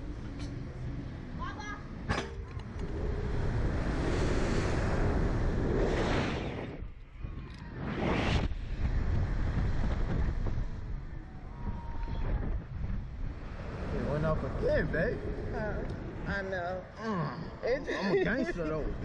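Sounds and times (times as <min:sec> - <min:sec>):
wind rushing over microphone: 0:02.0 - 0:17.0.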